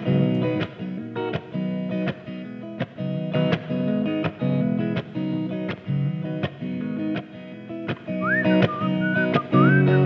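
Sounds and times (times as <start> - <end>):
electric guitar strummed chords: 0.0 - 10.0
man whistling a melody: 8.1 - 10.0.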